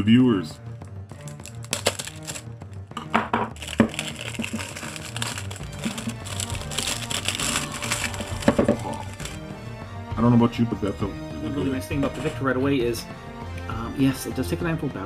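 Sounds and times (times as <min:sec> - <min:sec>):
plastic wrapping crinkling: 0:01.1 - 0:02.8, 0:03.5 - 0:09.4.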